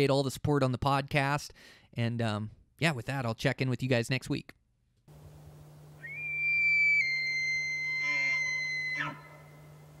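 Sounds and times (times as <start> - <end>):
low steady hum: 5.1 - 10.0
high whistle-like tone: 6.0 - 9.4.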